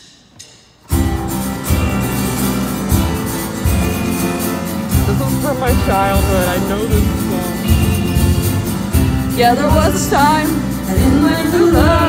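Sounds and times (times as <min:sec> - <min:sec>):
heavy beats: 0:00.0 - 0:12.0
acoustic guitar strumming: 0:00.9 - 0:12.0
drums and bass: 0:00.9 - 0:12.0.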